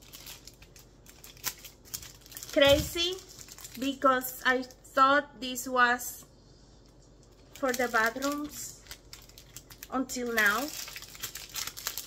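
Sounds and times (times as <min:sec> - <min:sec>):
plastic wrapping crinkling: 0:00.0 - 0:04.8, 0:07.0 - 0:12.0.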